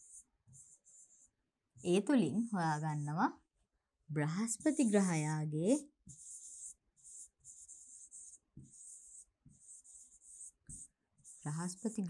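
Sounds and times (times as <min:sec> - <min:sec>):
pen scratching on board: 0:00.0 - 0:02.2, 0:04.4 - 0:12.0.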